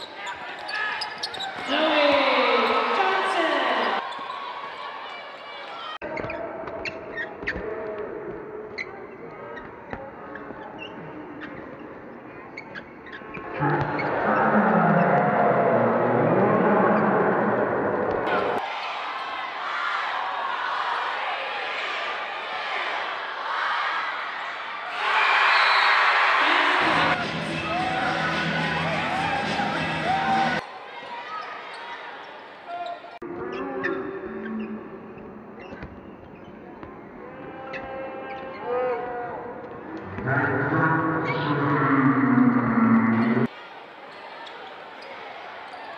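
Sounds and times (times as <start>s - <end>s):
shoes squeaking on court: 0.0s - 2.9s, 3.8s - 4.6s, 8.7s - 14.2s, 35.6s - 37.0s
arena crowd murmur: 8.0s - 34.4s, 36.5s - 45.9s
loud arena music: 26.2s - 30.6s.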